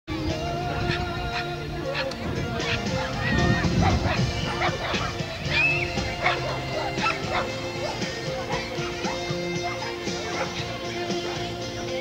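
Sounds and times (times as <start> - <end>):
music playing: 0.1 - 12.0
dog yipping: 0.9 - 10.6.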